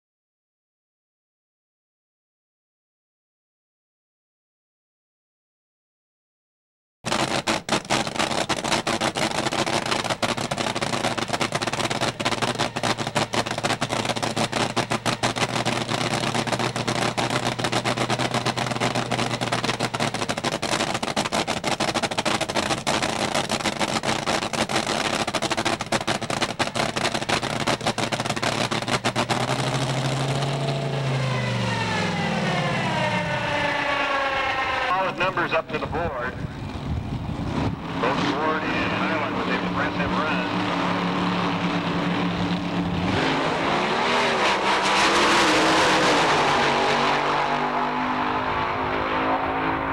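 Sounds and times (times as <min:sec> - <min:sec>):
dragster engine crackling: 0:07.1 - 0:43.2.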